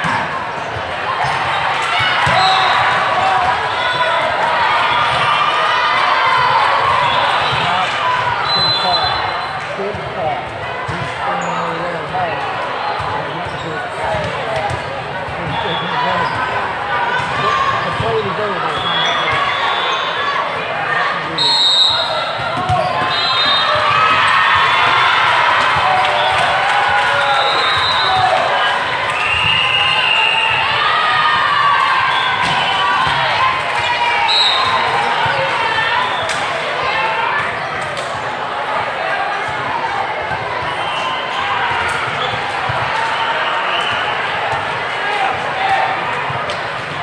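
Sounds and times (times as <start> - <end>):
volleyballs hit and bouncing: 0.0 - 19.5, 22.2 - 29.8, 43.8 - 47.0
many overlapping voices: 0.0 - 47.0.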